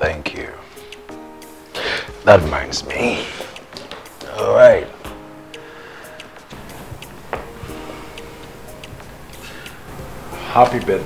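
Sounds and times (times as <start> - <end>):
soft film score: 0.0 - 11.0.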